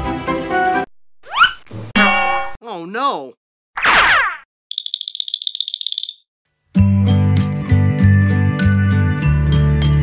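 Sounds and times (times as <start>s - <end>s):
rapid high bell-like rattle: 4.7s - 6.2s.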